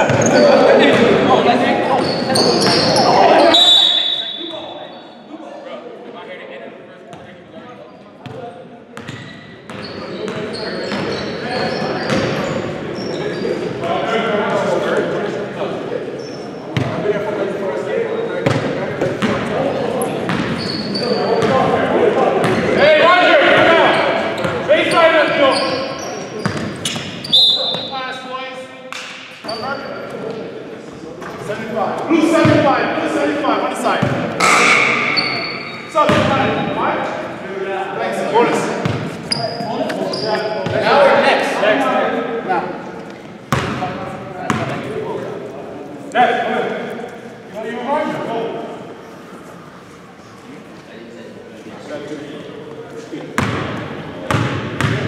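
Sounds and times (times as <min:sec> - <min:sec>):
players calling out: 0:00.0 - 0:05.3, 0:17.8 - 0:28.4, 0:31.6 - 0:45.4
short high squeaks: 0:34.4 - 0:36.0.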